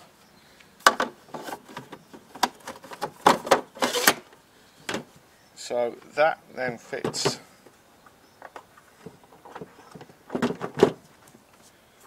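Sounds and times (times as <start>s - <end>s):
knocks and rattles of drawer unit: 9.5s - 11.0s.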